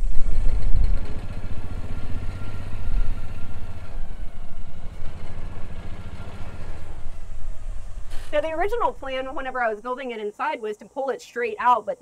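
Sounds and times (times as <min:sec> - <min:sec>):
utility vehicle engine puttering: 0:00.0 - 0:10.2.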